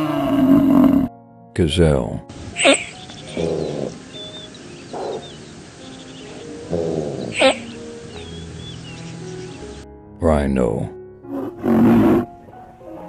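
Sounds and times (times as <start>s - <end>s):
background music: 0.0s - 13.0s
drawn-out falling animal calls: 2.3s - 9.8s
high bird-like chirps: 2.3s - 9.8s.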